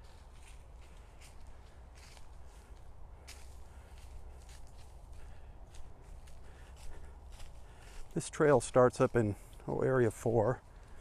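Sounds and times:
footsteps crunching on dry leaves: 0.0 - 11.0.

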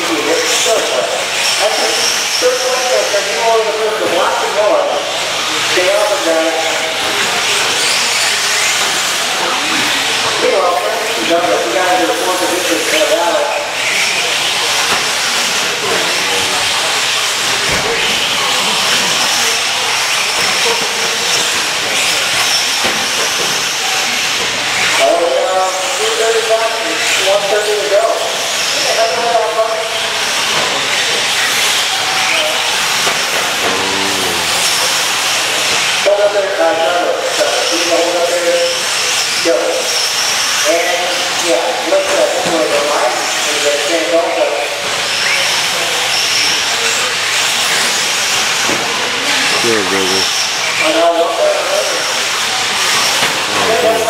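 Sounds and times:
indistinct voices: 31.8 - 36.5, 49.1 - 52.2, 52.9 - 54.0.

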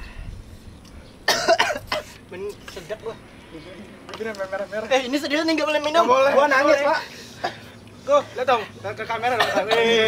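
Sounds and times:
person coughing harshly: 1.3 - 2.2, 9.4 - 10.0.

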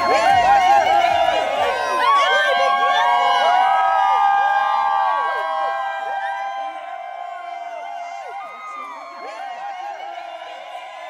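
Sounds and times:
crowd cheering and whooping: 0.0 - 11.0.

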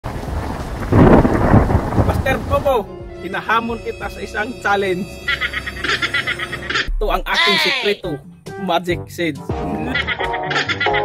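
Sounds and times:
thunder crash: 0.0 - 2.8
rain-like hiss: 0.1 - 2.8.

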